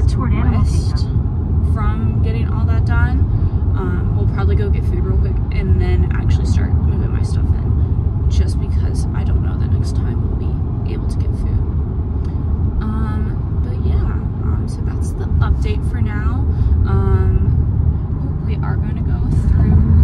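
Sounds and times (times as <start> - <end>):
engine and tyre rumble: 0.0 - 20.0.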